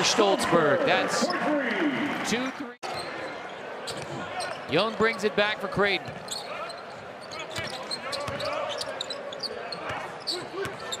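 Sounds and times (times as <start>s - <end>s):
faint voices of crowd: 0.0s - 11.0s.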